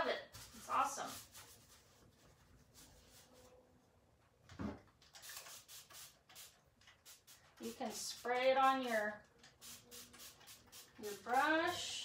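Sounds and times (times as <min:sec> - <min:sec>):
brush swishes on wood: 0:00.2 - 0:03.6.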